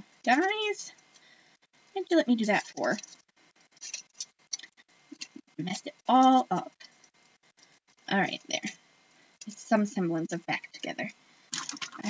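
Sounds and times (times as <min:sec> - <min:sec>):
packaging crinkling: 0:03.8 - 0:04.7, 0:11.5 - 0:12.0.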